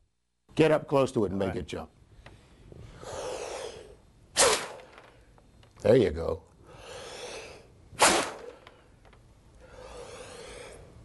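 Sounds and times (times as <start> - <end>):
soft breathing: 2.1 - 4.1, 6.6 - 7.8, 8.4 - 11.0
sharp puff of breath: 6.7 - 8.8.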